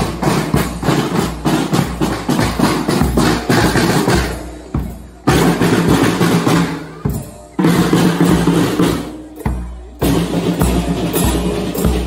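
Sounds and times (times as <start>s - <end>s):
marching snare drums: 0.0s - 12.0s.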